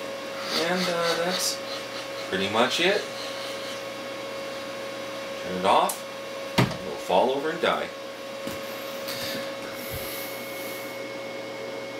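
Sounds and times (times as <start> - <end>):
electric motor whine: 8.5 - 11.9.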